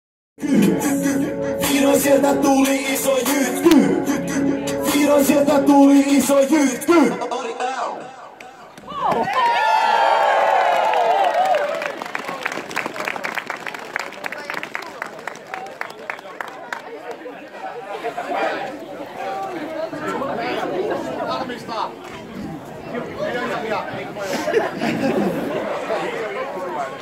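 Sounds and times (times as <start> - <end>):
crowd chatter: 0.4 - 27.0
men cheering shout: 8.9 - 11.9.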